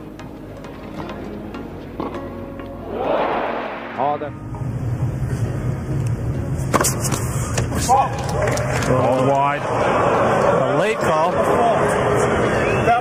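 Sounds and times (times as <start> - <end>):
crowd noise: 2.8 - 4.4, 8.2 - 13.0.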